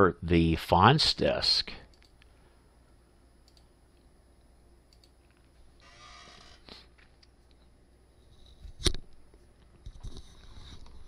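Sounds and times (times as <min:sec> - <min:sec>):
computer mouse clicks: 0:03.4 - 0:03.7, 0:04.9 - 0:05.2.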